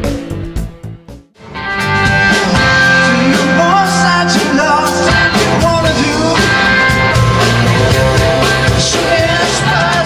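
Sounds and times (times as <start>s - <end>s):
rock band playing: 0.0s - 10.0s
picked electric guitar: 1.4s - 10.0s
person singing: 2.0s - 10.0s.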